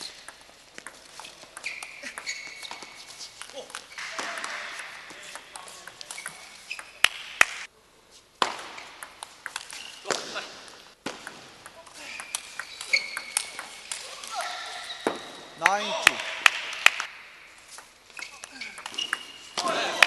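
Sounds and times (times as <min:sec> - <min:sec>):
table tennis ball hitting table and rackets: 0:00.0 - 0:07.7, 0:08.4 - 0:20.0
voices and shouts: 0:14.0 - 0:15.0, 0:19.6 - 0:20.0.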